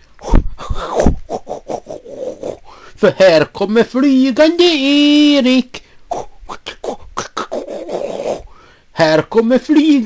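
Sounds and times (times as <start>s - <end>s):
rough breathy noise: 0.0s - 3.0s, 8.3s - 9.0s
man beatboxing: 6.1s - 8.4s.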